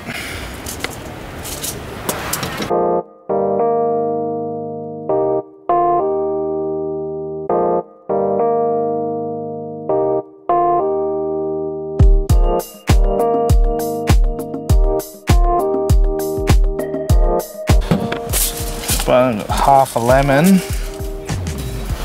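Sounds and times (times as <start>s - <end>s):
slow electric piano chords: 2.7s - 19.1s.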